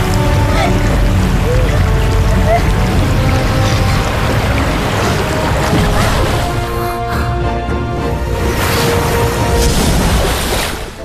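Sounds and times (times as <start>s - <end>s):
background music score: 0.0s - 11.0s
swirling water rushing: 0.0s - 11.0s.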